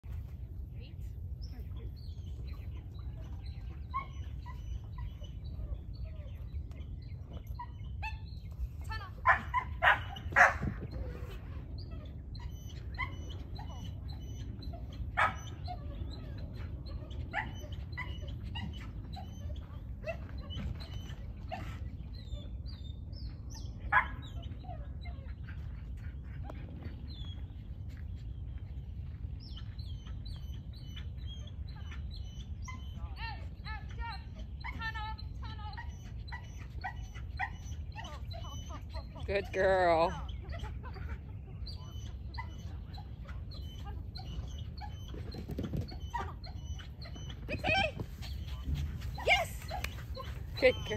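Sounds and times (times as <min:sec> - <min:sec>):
dog yipping and whining: 0:03.7 - 0:06.4, 0:09.2 - 0:21.8, 0:34.6 - 0:39.2, 0:40.4 - 0:50.9
dog barking: 0:09.2 - 0:10.6.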